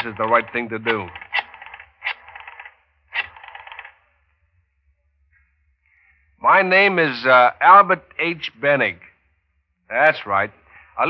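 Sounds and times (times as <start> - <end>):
rotary telephone dialling: 0.0 - 4.0.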